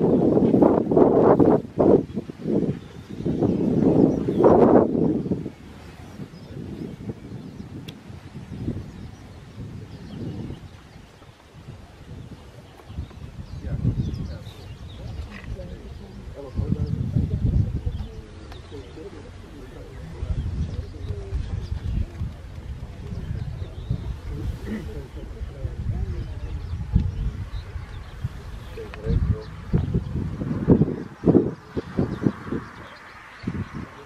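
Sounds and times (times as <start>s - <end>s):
wind buffeting microphone: 0.0s - 34.0s
murmured voices: 11.6s - 34.0s.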